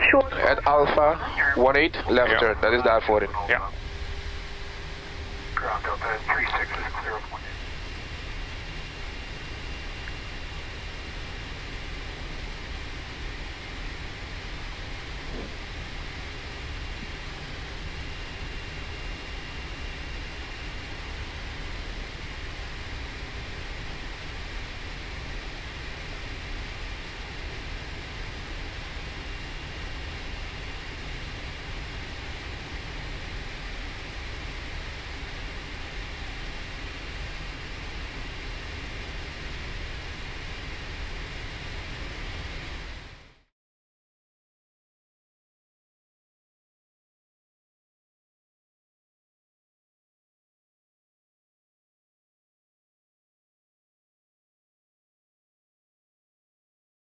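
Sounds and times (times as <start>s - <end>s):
aircraft engine noise: 0.0s - 19.1s
cockpit air-conditioning airflow: 0.0s - 43.1s.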